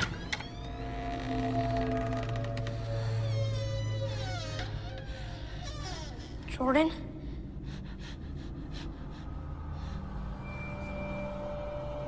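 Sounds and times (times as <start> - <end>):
low suspense film score drone: 0.0 - 12.0
soft breaths: 4.8 - 10.5.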